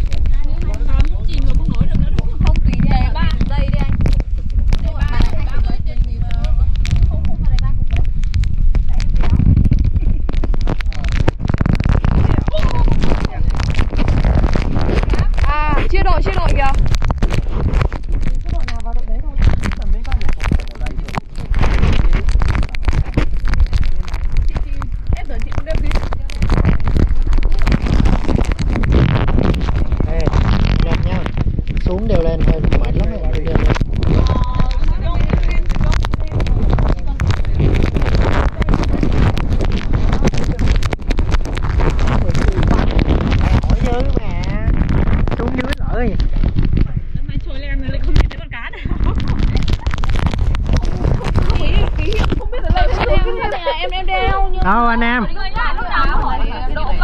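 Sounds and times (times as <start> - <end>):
people talking: 0.0 - 16.9, 18.4 - 57.0
wind buffeting microphone: 0.0 - 57.0.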